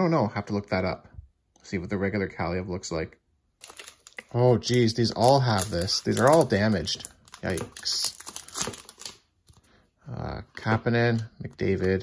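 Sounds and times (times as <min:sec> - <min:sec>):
foil wrapper crinkling: 0:03.6 - 0:09.2.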